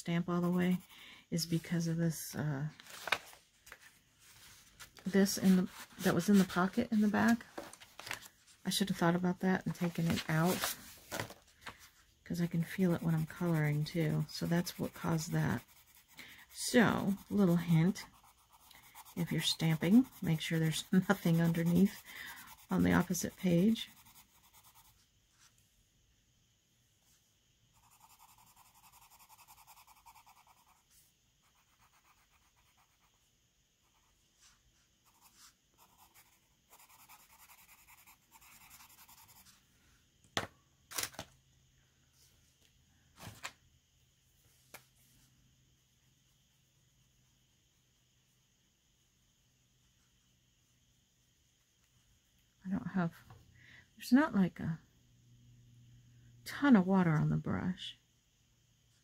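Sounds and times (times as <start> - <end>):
colored pencil scratching paper: 0.1 - 1.9, 5.2 - 7.4, 12.3 - 25.5, 27.7 - 33.2, 33.8 - 39.6.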